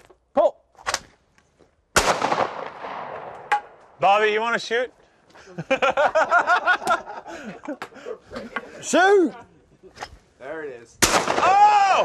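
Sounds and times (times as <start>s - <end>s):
shotgun shot with long echo: 2.0s - 3.8s, 11.0s - 11.6s.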